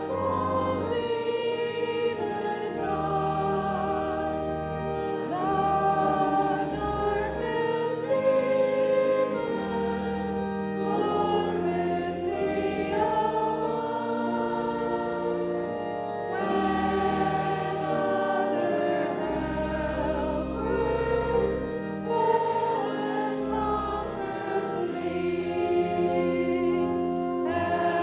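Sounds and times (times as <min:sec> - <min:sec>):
congregation singing a hymn: 0:00.0 - 0:28.0
sustained instrumental accompaniment: 0:00.0 - 0:28.0.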